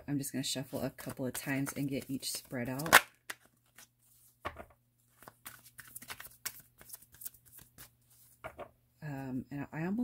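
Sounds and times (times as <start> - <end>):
cards being shuffled: 1.0 - 8.7.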